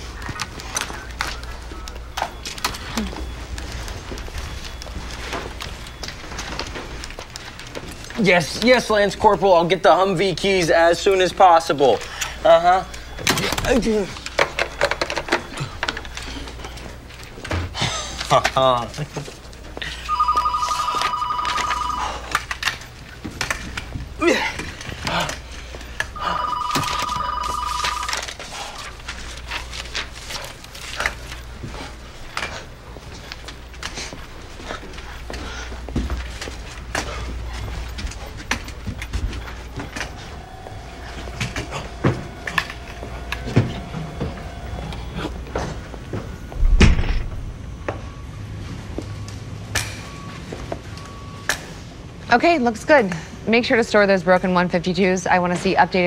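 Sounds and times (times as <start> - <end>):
desk telephone ringing: 19.9 - 22.7, 26.1 - 28.5, 39.4 - 46.5
loud thump: 46.6 - 47.4.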